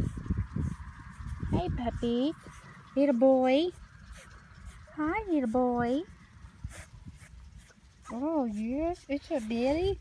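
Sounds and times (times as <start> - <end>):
low rumble: 0.0 - 10.0
hand rubbing fur: 6.6 - 10.0.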